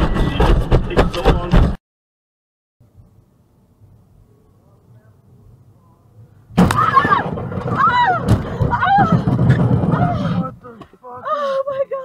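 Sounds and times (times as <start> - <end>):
car crash rumbling and scraping: 0.0 - 1.8, 6.5 - 10.8.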